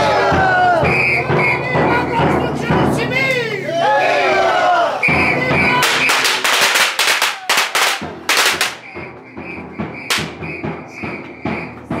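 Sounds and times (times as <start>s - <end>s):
firecrackers banging: 5.0s - 12.0s.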